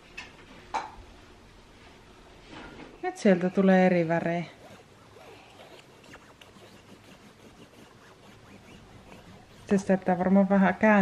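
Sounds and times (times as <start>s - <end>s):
pen tip squeaking on paper: 4.5s - 10.2s.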